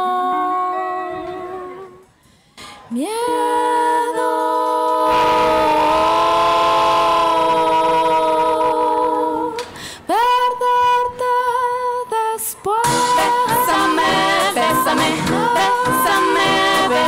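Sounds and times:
women singing close harmony: 0.0s - 2.0s, 2.9s - 17.0s.

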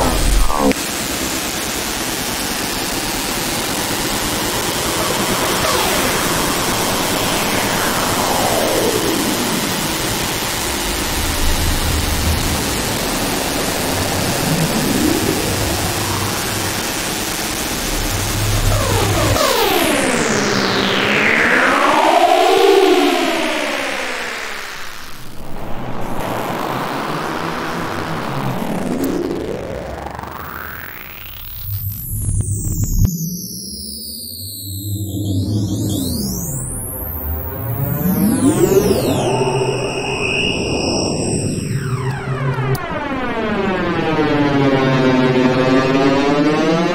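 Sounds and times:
falling noise sweep: 0.0s - 2.0s, 2.9s - 30.5s, 36.0s - 46.9s
rising noise riser: 0.0s - 2.1s, 2.8s - 33.1s, 36.4s - 46.9s
dense rushing noise: 0.0s - 22.4s
low rumble: 4.4s - 19.4s.

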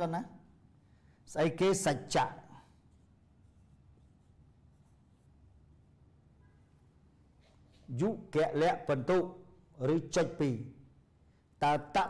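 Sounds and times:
low room hum: 0.0s - 12.0s
marker on whiteboard: 2.2s - 8.6s.

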